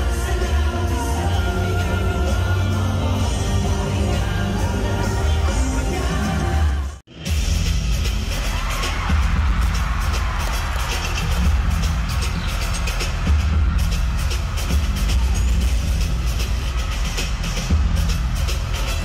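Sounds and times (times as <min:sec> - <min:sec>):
pop dance music with heavy bass: 0:00.0 - 0:19.0
crowd cheering: 0:08.1 - 0:19.0.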